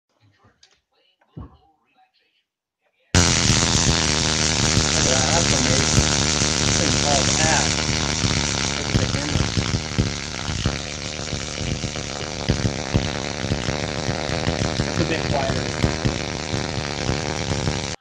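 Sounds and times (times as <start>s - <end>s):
tesla coil electrical buzz: 3.2s - 18.0s.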